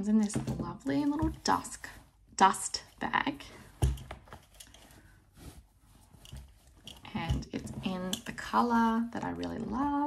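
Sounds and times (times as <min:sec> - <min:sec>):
fabric bag rustling: 0:00.3 - 0:10.0.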